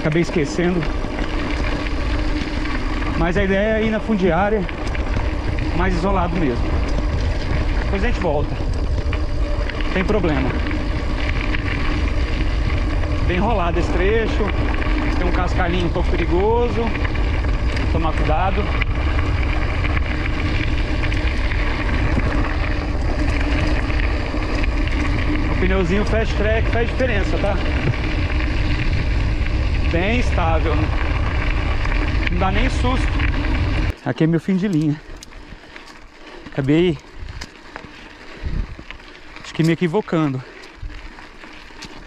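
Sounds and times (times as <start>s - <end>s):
wind noise on microphone: 0.0s - 34.0s, 35.0s - 42.0s
bike tyres rumbling on gravel: 0.0s - 42.0s.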